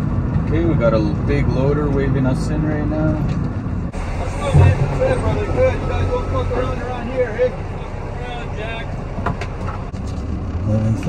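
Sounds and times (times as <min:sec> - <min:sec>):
diesel truck engine idling: 0:01.7 - 0:11.0
man talking: 0:04.1 - 0:09.0.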